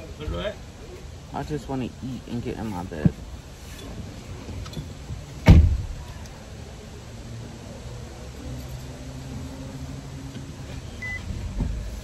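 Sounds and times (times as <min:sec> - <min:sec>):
car rumble: 0:00.0 - 0:12.0
car door thump: 0:05.4 - 0:06.0.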